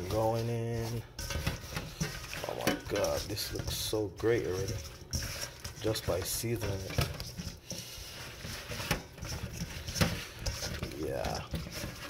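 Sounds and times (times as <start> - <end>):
food squishing in a bowl: 0.0 - 12.0.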